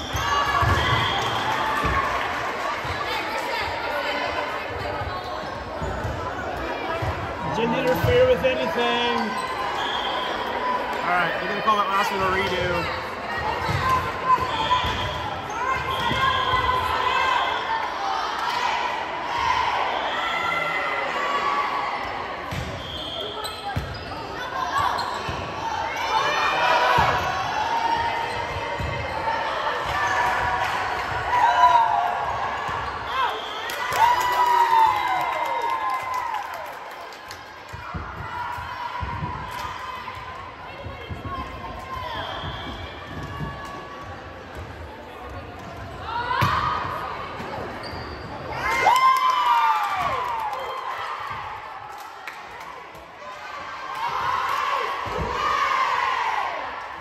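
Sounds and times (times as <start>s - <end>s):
sneaker squeaks on court floor: 0.0s - 2.0s, 9.1s - 10.5s, 22.5s - 25.5s, 47.4s - 48.6s.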